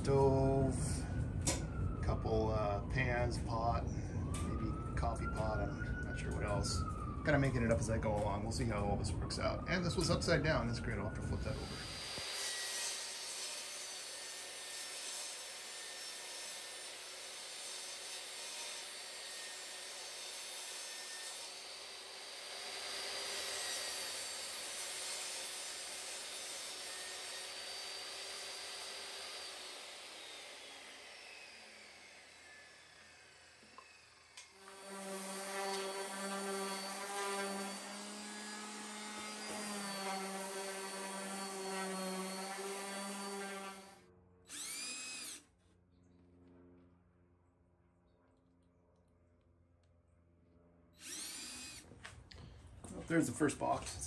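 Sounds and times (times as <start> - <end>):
table saw cutting plywood: 6.8 - 7.7, 11.4 - 45.4, 51.0 - 51.8
orbital sander running: 21.4 - 45.4, 51.0 - 52.0.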